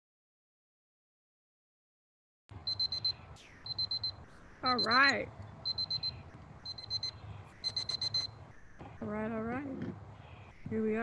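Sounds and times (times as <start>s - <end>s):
electronic timer alarm beeping: 2.6s - 8.4s.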